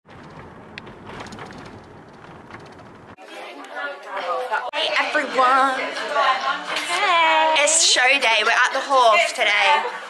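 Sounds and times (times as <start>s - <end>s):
low rumble: 0.1s - 3.2s.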